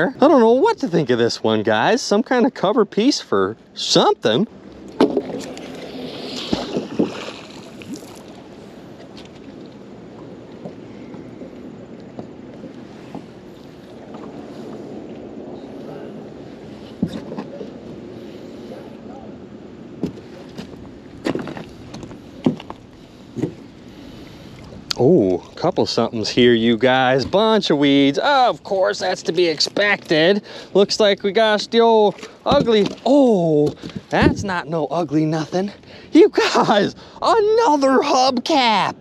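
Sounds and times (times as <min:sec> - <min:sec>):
water and hull rumble: 0:00.0 - 0:39.0.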